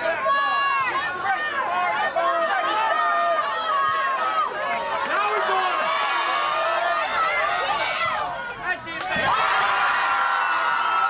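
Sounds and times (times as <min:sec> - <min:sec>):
crowd shouting: 0:00.0 - 0:11.0.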